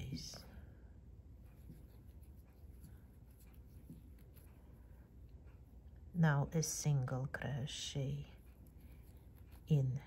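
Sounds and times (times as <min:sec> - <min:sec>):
crochet hook rustling thread: 0:00.0 - 0:00.7, 0:01.3 - 0:05.8, 0:07.0 - 0:10.0
low room hum: 0:00.0 - 0:10.0.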